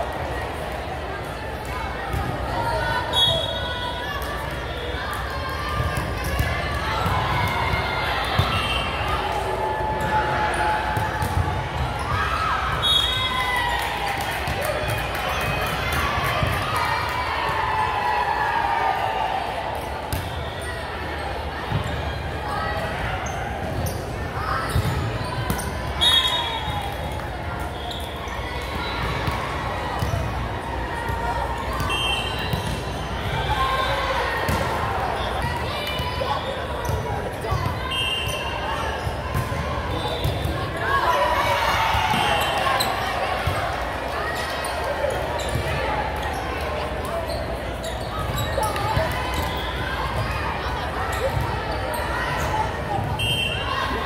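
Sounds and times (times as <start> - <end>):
background chatter: 0.0 - 54.0
sneakers squeaking on floor: 23.2 - 26.7, 36.3 - 41.3, 42.1 - 43.6, 44.3 - 50.3.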